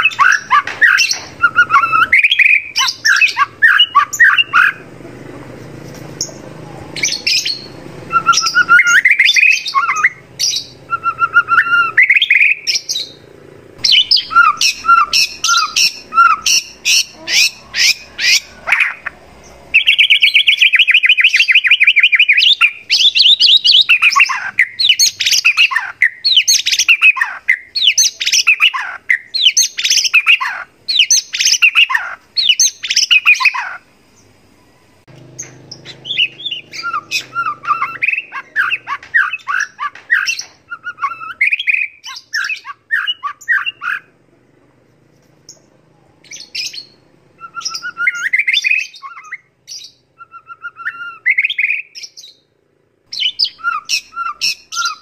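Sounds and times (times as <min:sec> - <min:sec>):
bird singing varied song: 0:00.0 - 0:05.0, 0:05.9 - 0:44.2, 0:44.9 - 0:55.0.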